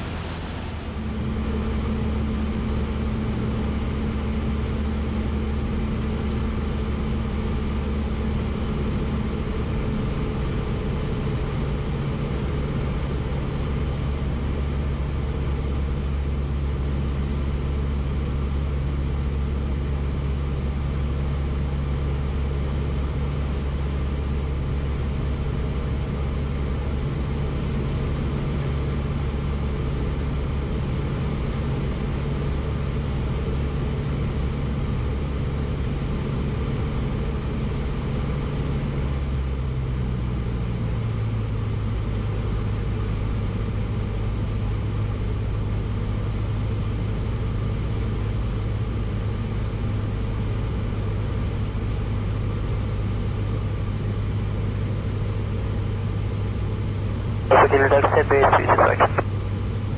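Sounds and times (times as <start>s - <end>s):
aircraft engine and propeller droning: 0.0s - 31.2s.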